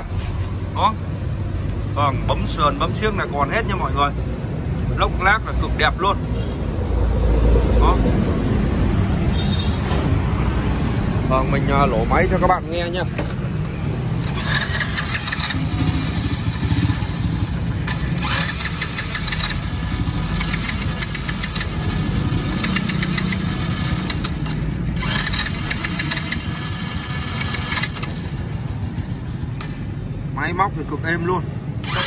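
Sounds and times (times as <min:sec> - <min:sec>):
motorbike engine idling: 0:14.1 - 0:30.3.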